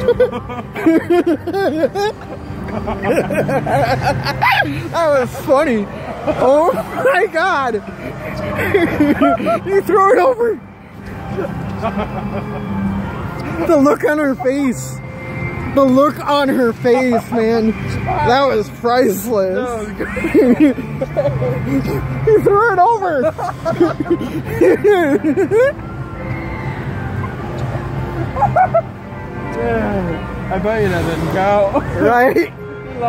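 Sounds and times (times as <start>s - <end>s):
crowd din: 0.0s - 32.9s
high-pitched laughing yelps: 3.0s - 4.9s.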